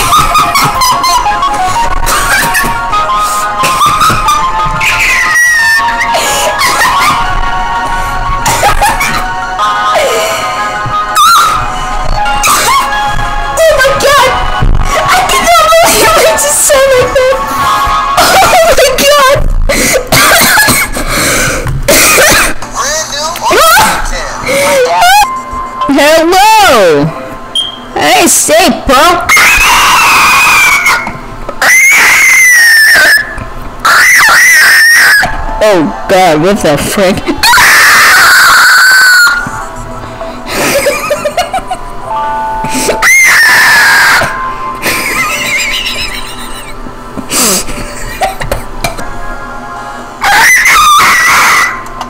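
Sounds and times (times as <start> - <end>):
music with high sung voice: 0.0 - 19.0, 34.0 - 36.2, 37.2 - 52.0
rough cough-like bursts: 21.9 - 22.6
loud high-pitched shriek: 50.2 - 51.8.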